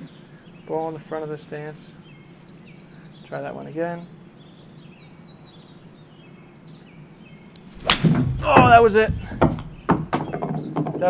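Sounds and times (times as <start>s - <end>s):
golf ball bouncing on wooden deck: 7.8s - 11.0s.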